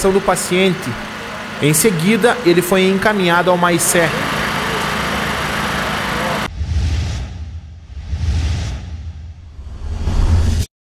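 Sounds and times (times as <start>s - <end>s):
motor running: 0.0s - 6.5s
low rumble: 6.5s - 10.7s.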